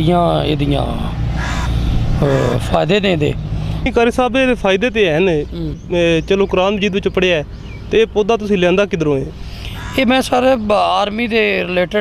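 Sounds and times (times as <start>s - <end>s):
man speaking: 2.2s - 12.0s.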